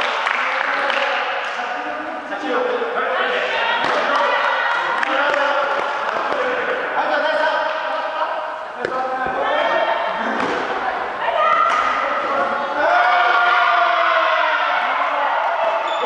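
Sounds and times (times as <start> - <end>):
people chattering and calling: 0.0 - 16.0
rackets hitting shuttlecock: 10.2 - 10.8, 11.6 - 12.1.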